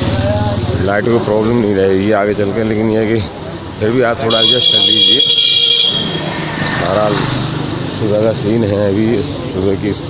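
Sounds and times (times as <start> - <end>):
street traffic: 0.0 - 10.0
vehicle horn toot: 4.3 - 6.3.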